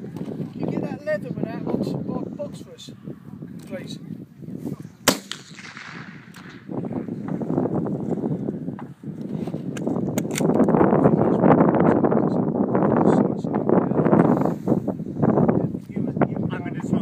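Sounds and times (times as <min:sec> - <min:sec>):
rifle shot: 0:05.0 - 0:06.8.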